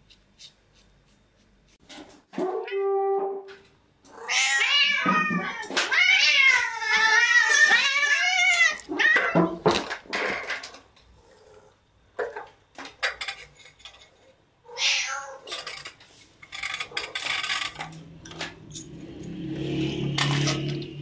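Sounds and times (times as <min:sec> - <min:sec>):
cat meowing: 0:04.1 - 0:09.4, 0:14.7 - 0:15.5.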